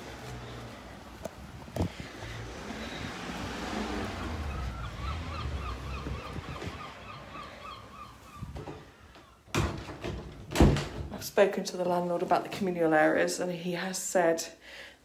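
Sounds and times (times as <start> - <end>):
gull calling: 4.0 - 9.4.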